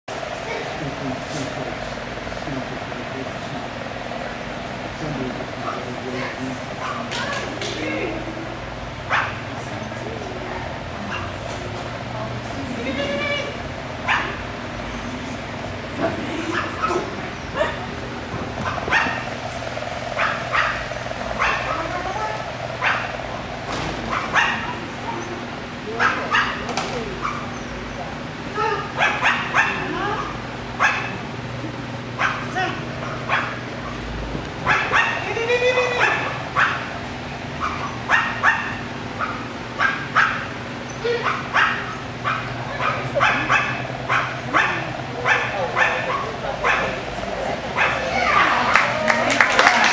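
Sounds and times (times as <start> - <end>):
small dog barking: 9.1 - 9.4, 14.0 - 14.4, 18.6 - 19.4, 20.1 - 23.2, 24.1 - 25.3, 26.0 - 27.6, 28.9 - 31.2, 32.2 - 33.6, 34.6 - 35.3, 36.0 - 36.9, 37.6 - 47.0, 47.8 - 48.8.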